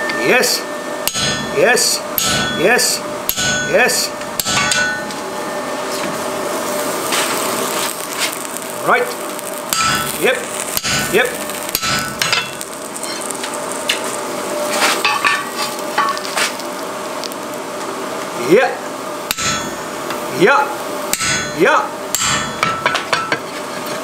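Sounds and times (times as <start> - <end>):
hammer striking punch on hot steel: 1.0 - 1.6, 2.2 - 2.7, 3.3 - 5.2, 9.7 - 13.2, 19.3 - 20.0, 21.1 - 23.4
grease sizzling on hot steel: 5.8 - 22.8.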